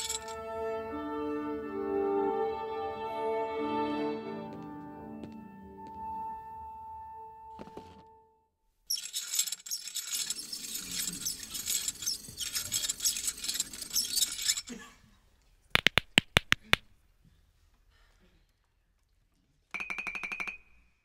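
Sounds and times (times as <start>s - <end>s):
sharp clicks: 15.8s - 16.9s.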